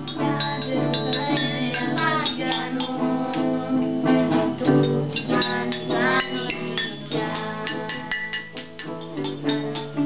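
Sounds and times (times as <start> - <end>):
glockenspiel notes ringing: 0.0 - 4.0, 4.6 - 10.0.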